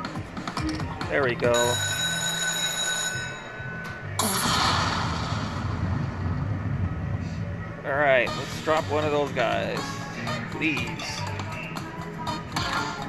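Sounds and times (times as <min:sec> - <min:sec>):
ringing multi-tone chime: 0:01.5 - 0:04.2
crackling thunder crash: 0:04.4 - 0:07.5.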